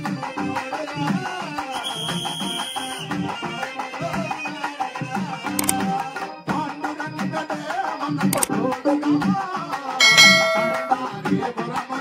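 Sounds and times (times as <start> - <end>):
bell-like ringing note: 10.0 - 11.2.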